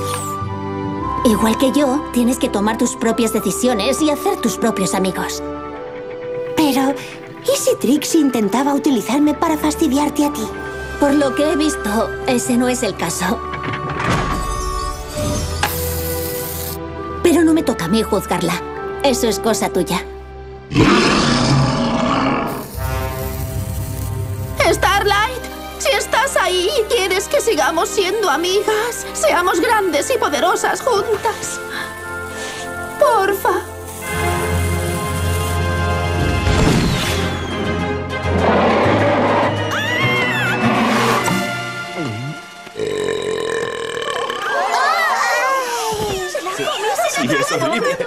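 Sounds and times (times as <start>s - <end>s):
music: 0.0s - 48.0s
cartoon creature roar: 20.7s - 22.7s, 43.1s - 45.7s.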